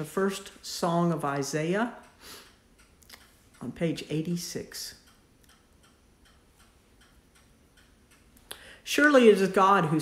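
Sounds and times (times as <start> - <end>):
clock ticking: 0.0 - 10.0.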